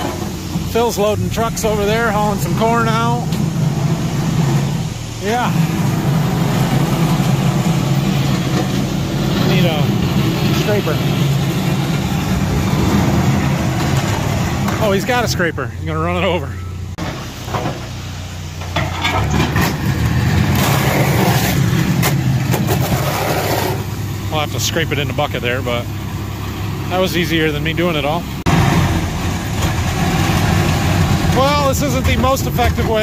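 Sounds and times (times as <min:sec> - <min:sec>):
diesel engine under load: 0:00.0 - 0:33.0
bucket pushing mud on concrete: 0:19.5 - 0:24.5.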